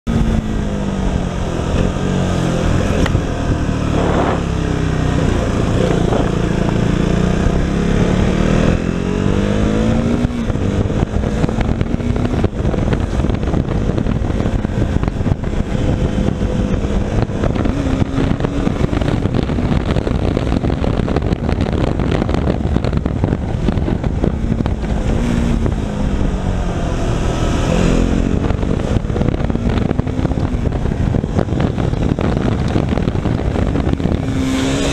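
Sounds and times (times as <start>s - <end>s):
motorcycle engine: 0.0s - 34.9s
wind buffeting microphone: 0.1s - 34.9s.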